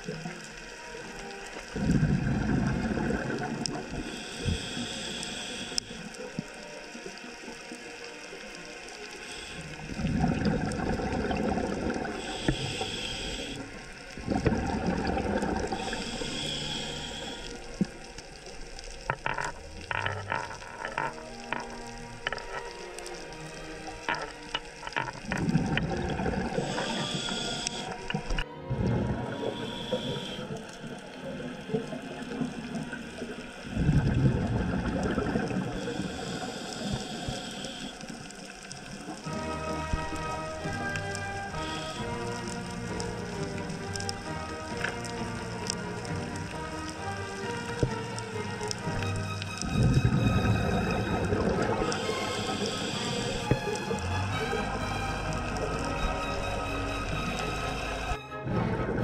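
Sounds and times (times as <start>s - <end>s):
crackling clicks: 0.0s - 28.5s, 29.5s - 58.2s
exhaled bubbles rushing: 1.7s - 4.6s, 9.8s - 19.1s, 21.2s - 37.2s, 47.4s - 59.0s
regulator hissing inhalation: 2.9s - 6.5s, 9.0s - 10.5s, 11.3s - 25.5s, 26.1s - 28.4s, 29.4s - 34.2s, 35.5s - 39.0s, 40.4s - 45.9s, 48.8s - 58.2s.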